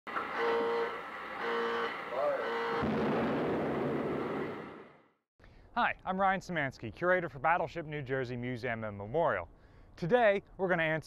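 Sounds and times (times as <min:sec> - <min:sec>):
short held tones: 0:00.1 - 0:02.8.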